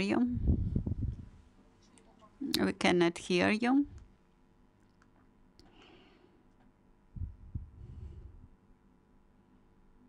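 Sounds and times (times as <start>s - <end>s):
faint steady hum: 0.0s - 10.0s
muffled thumps and rumble: 0.4s - 1.4s, 7.2s - 8.0s.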